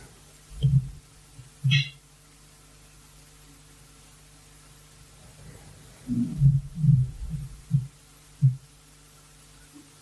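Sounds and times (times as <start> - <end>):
man humming closed-mouth: 6.1 - 8.7.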